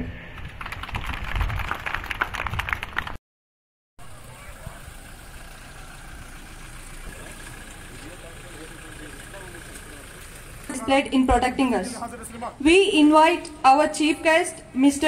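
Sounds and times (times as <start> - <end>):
audience clapping: 0.3 - 3.2
car engine running: 4.0 - 13.6.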